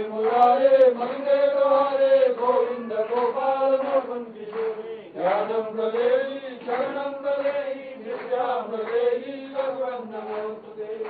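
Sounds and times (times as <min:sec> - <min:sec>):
men chanting verses: 0:00.0 - 0:11.0.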